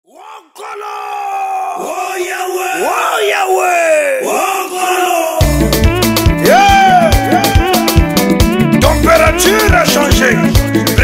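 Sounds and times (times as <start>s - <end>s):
person whooping: 0.1s - 9.8s
person shouting: 0.1s - 10.5s.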